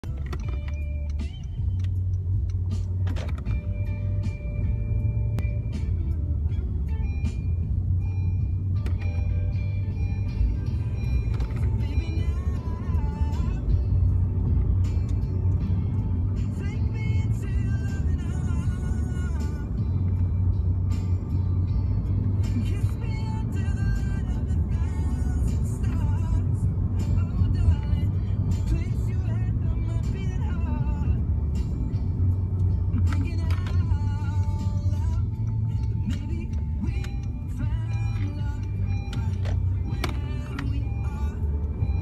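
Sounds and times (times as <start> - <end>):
car engine and road rumble: 0.0 - 42.0
music playing: 0.0 - 42.0.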